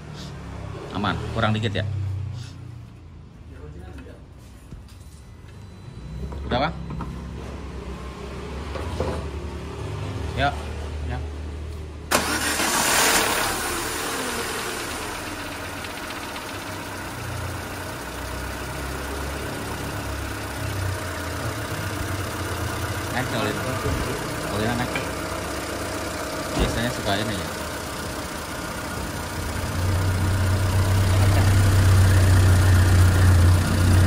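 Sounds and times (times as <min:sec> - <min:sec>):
petrol engine starting and idling: 0:12.0 - 0:34.0.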